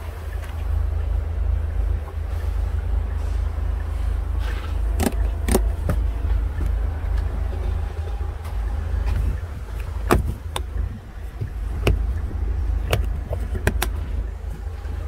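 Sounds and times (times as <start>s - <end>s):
low rumble: 0.0s - 15.0s.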